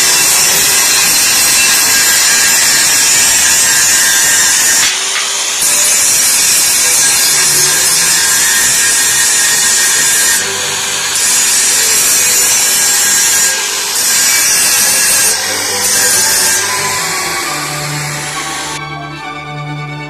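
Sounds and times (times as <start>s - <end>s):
angle grinder grinding metal: 0.0s - 19.0s.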